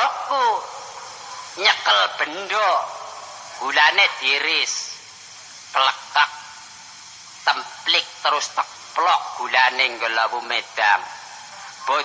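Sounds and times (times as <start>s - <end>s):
man calling out: 0.0s - 0.7s, 1.6s - 3.0s
cassette tape hiss: 0.0s - 12.0s.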